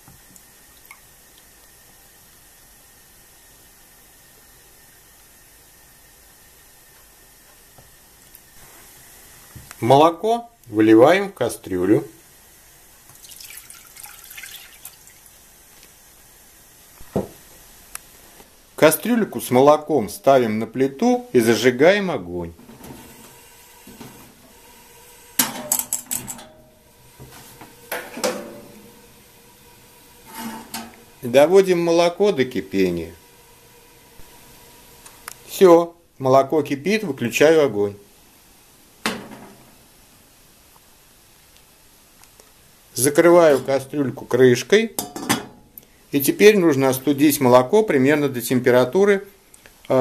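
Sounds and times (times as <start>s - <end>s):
faint room tone hiss: 0.0s - 50.0s.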